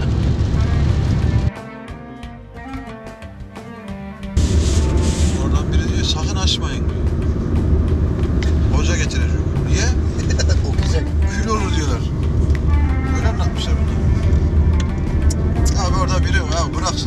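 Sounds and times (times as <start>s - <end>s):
car engine rumble in cabin: 0.0s - 1.5s, 4.4s - 17.0s
road noise: 0.0s - 17.0s
man talking: 5.4s - 7.0s, 8.7s - 12.2s, 13.1s - 14.0s, 15.6s - 17.0s.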